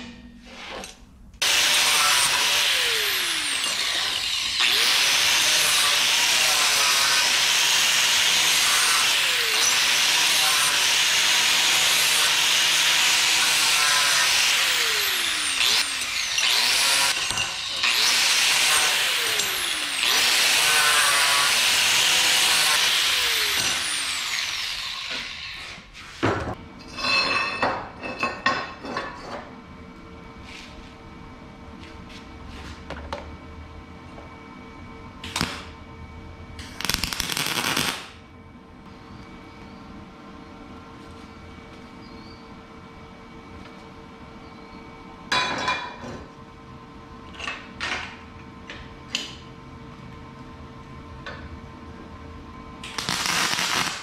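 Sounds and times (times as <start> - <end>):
angle grinder grinding steel: 1.4 - 25.9.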